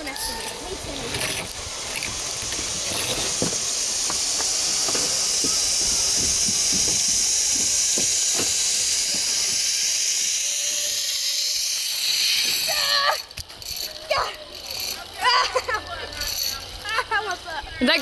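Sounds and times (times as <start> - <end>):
zip-line trolley hissing on cable: 0.0 - 18.0.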